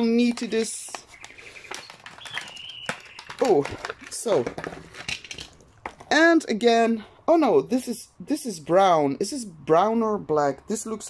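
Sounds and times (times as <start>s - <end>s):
packaging rustling and clicking: 0.2s - 6.1s.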